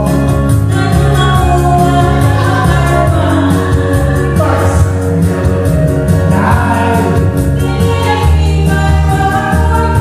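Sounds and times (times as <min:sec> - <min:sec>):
man and woman singing duet: 0:00.0 - 0:05.1, 0:06.2 - 0:10.0
loud backing music with bass: 0:00.0 - 0:10.0.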